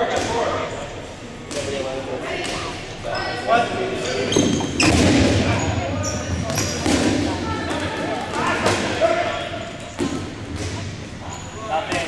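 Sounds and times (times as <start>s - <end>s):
balls thudding and bouncing on floor: 10.0s - 11.0s.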